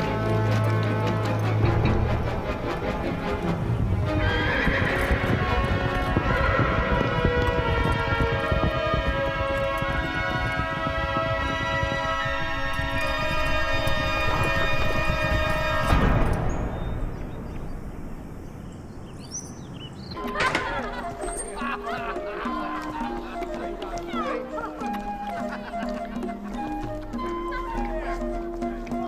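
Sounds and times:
horse hooves clip-clopping: 0.0s - 17.0s, 20.1s - 29.0s
orchestral film music: 0.0s - 17.7s, 20.2s - 29.0s
horse whinnying: 4.1s - 10.7s.

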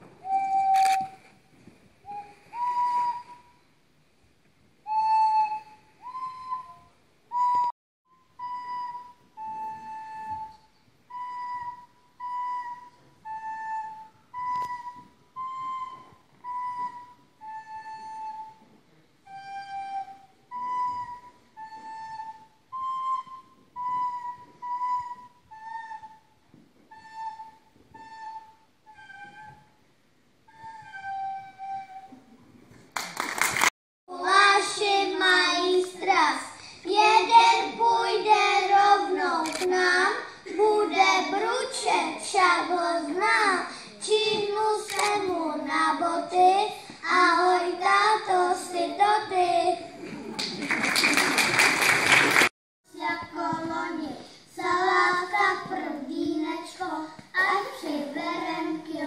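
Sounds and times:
recorders playing slow melody: 8.2s - 29.8s, 30.4s - 32.4s.

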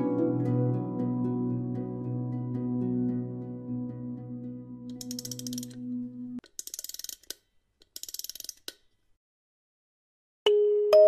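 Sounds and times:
soft background music: 0.0s - 6.4s
rapid mechanical clicking: 4.9s - 5.8s.

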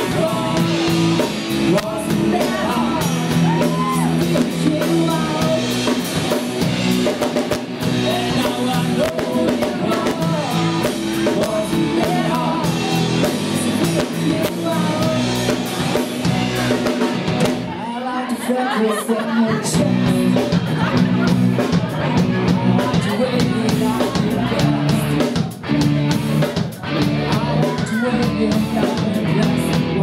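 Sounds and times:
live rock band playing: 0.0s - 30.0s
woman singing: 1.7s - 5.7s, 20.8s - 25.3s, 27.2s - 30.0s.

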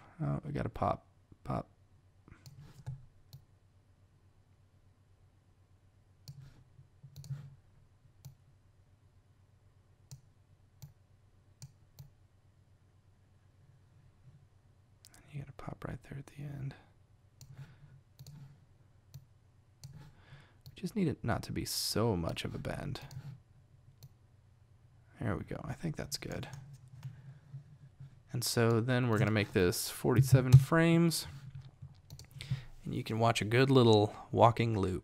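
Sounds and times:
computer mouse clicking: 2.4s - 3.5s, 6.2s - 7.4s, 8.2s - 8.4s, 18.2s - 18.5s, 19.1s - 20.8s, 32.0s - 32.4s.

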